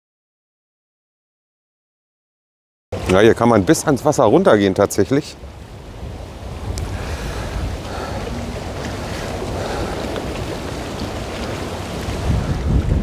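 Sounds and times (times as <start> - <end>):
small waves lapping at shore: 3.0 - 13.0
wind buffeting microphone: 3.0 - 13.0.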